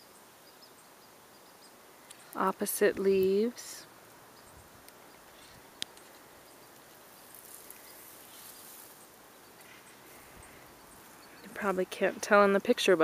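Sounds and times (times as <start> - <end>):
faint steady hiss: 0.0 - 13.0.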